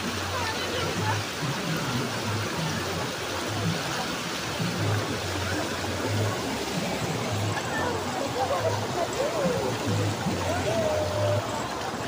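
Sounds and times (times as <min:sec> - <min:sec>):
rain and floodwater: 0:00.0 - 0:12.0.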